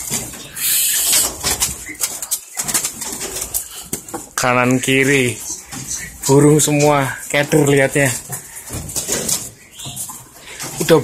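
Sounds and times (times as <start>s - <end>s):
many birds calling: 0.0s - 11.0s.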